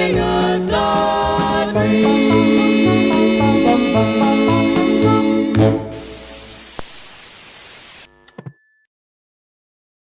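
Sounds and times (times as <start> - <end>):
television static hiss: 5.9 - 8.5.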